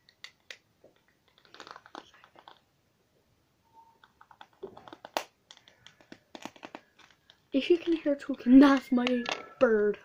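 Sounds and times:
small hard objects clicking: 0:00.0 - 0:02.6, 0:04.0 - 0:08.0.

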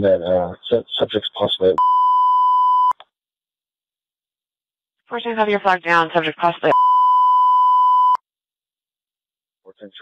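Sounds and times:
censor bleep tone: 0:01.8 - 0:03.0, 0:06.7 - 0:08.2.

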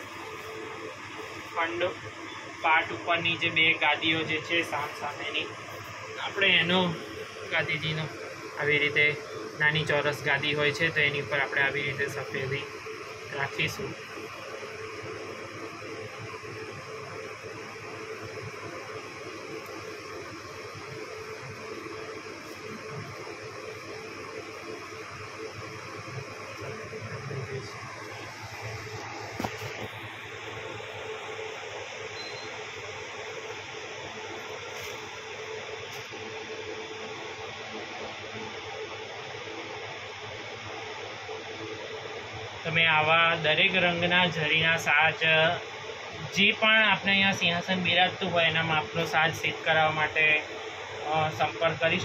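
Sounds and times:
machine hiss and low hum: 0:00.0 - 0:52.0.

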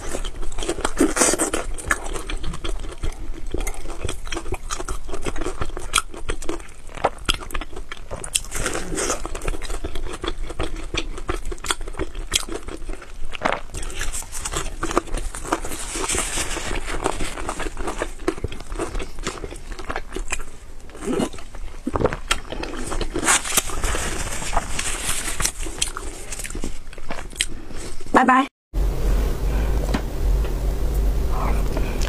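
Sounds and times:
person chewing food: 0:00.0 - 0:28.0.

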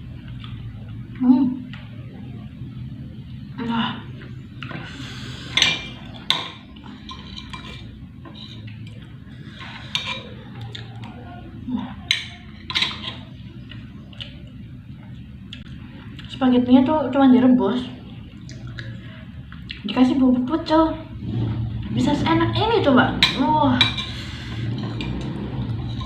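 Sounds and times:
cutlery scraping a glass plate: 0:05.5 - 0:08.7, 0:09.5 - 0:10.4, 0:12.1 - 0:13.3, 0:23.2 - 0:26.0.

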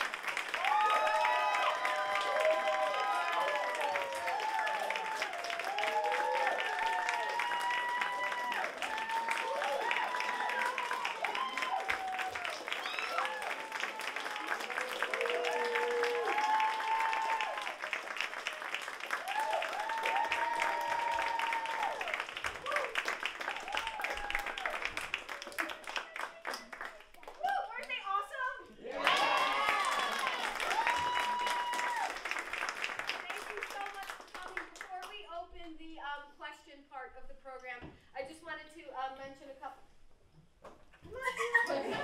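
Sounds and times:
audience applauding: 0:00.0 - 0:28.0, 0:28.8 - 0:35.2.

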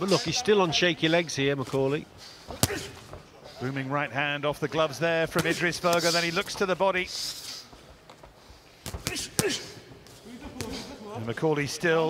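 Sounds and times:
boxing gloves landing punches: 0:02.5 - 0:03.3, 0:05.3 - 0:06.1, 0:08.8 - 0:10.9.

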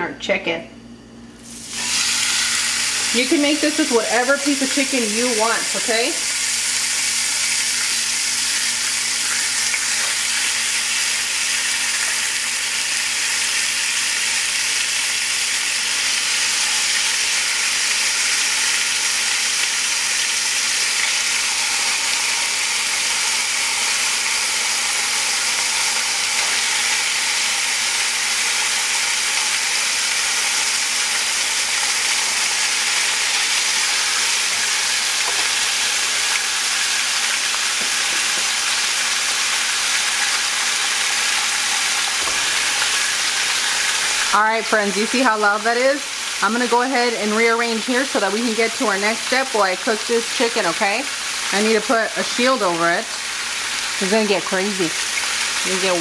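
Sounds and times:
chicken sizzling on a grill pan: 0:01.4 - 0:56.0.

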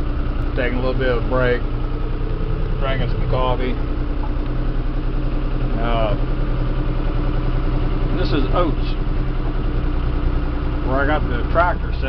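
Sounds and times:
tractor diesel engine idling: 0:00.0 - 0:12.0.

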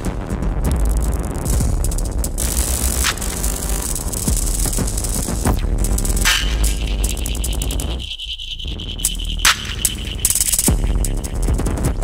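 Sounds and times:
deep bass drone: 0:00.0 - 0:12.0
gritty high-pitched rattling: 0:01.4 - 0:11.8.

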